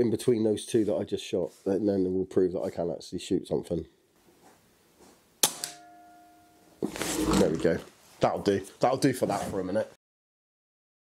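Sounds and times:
short metallic ring: 5.6s - 6.8s.

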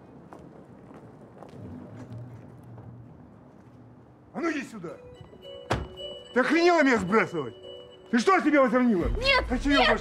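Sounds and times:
background music: 4.4s - 10.0s
car door slamming: 5.7s - 6.0s.

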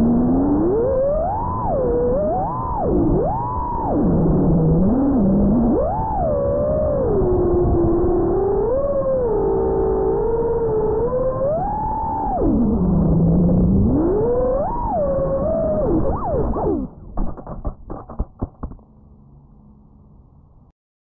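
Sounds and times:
drone motors whining: 0.0s - 19.7s.

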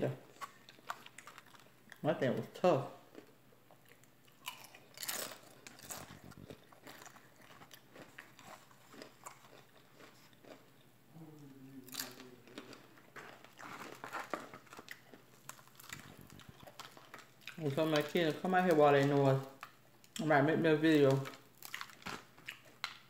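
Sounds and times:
person chewing crunchy food: 0.3s - 2.0s, 3.0s - 11.0s, 11.8s - 18.1s, 21.2s - 23.0s
person humming: 11.1s - 12.6s.

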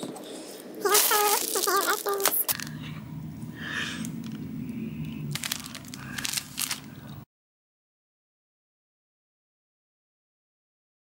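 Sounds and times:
cellophane crinkling: 0.8s - 2.8s, 5.0s - 7.2s.

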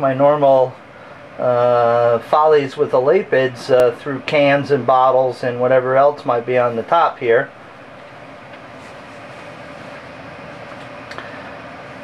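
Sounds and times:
air conditioning hum: 0.0s - 12.0s.

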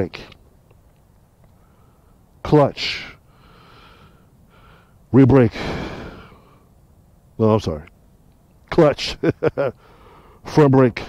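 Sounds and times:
soft breathing: 1.5s - 2.4s, 3.0s - 6.9s, 9.8s - 10.5s.

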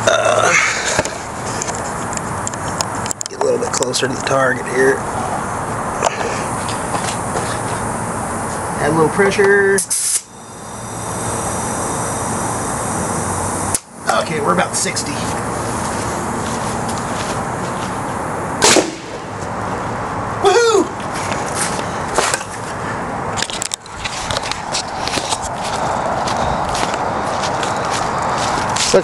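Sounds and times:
steady background hiss: 0.0s - 29.0s
potato gun bang: 18.6s - 19.2s.

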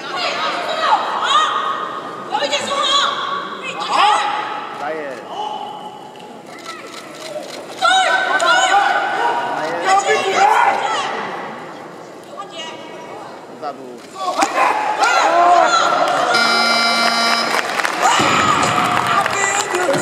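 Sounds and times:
spectators shouting encouragement: 14.3s - 16.5s, 17.9s - 20.0s.

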